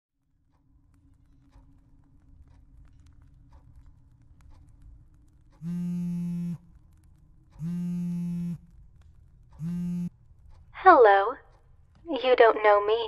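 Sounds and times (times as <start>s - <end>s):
phone call buzzing tones: 5.6s - 6.6s, 7.6s - 8.6s, 9.6s - 10.1s.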